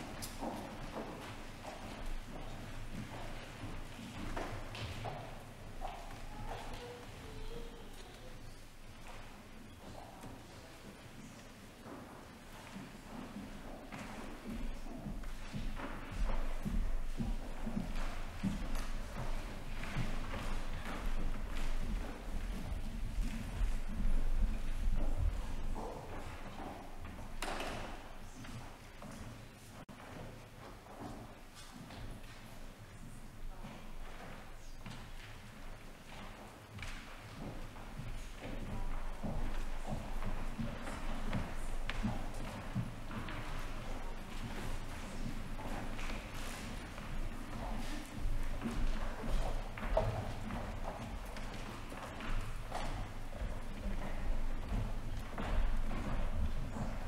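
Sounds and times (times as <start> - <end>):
footsteps on tiled floor: 0.0 - 57.0.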